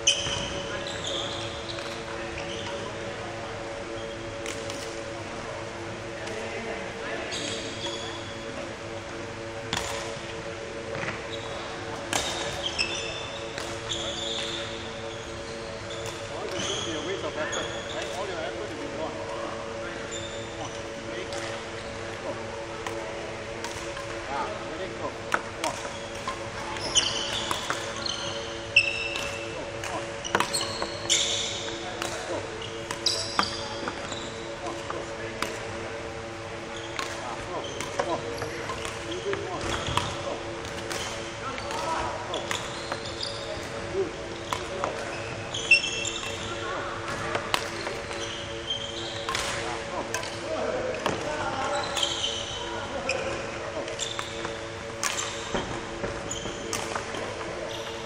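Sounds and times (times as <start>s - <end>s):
shoes squeaking on court: 0.0s - 6.5s, 7.2s - 24.1s, 24.8s - 58.0s
steady hum: 0.0s - 58.0s.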